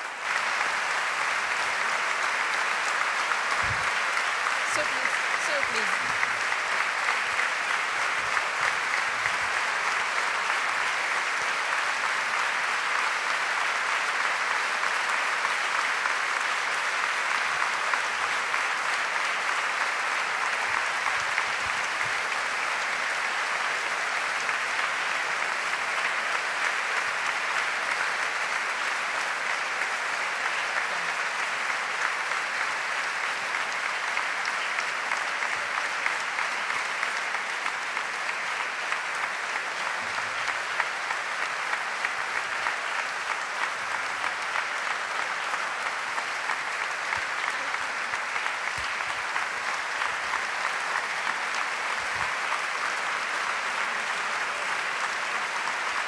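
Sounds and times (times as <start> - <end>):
audience applauding: 0.0 - 56.0
sharp claps: 0.0 - 56.0.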